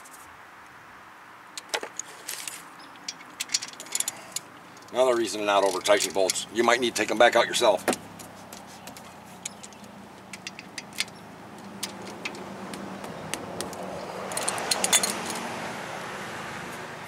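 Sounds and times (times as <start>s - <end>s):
wrench clinking on metal bolts: 1.6s - 6.7s, 9.4s - 12.5s, 14.3s - 15.4s
metal rattles: 1.6s - 6.8s, 7.8s - 15.4s
vehicle passing: 2.5s - 17.0s.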